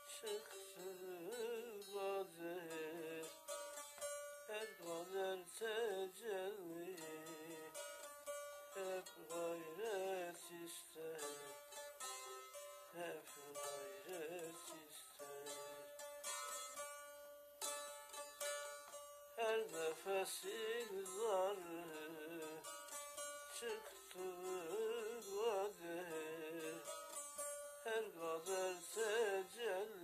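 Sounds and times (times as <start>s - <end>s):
man singing ornamented lines: 0.0s - 3.8s, 4.4s - 16.7s, 19.4s - 30.0s
plucked and strummed lute: 0.0s - 30.0s.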